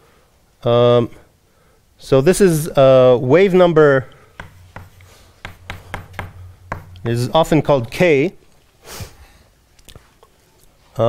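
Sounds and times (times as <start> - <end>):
chalk tapping on blackboard: 4.4 - 7.5.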